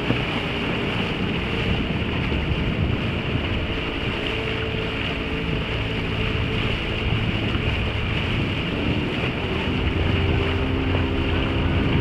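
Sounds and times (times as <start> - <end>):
motorboat engine humming: 0.0 - 12.0
water rushing past hull: 0.0 - 12.0
wind buffeting microphone: 0.0 - 12.0.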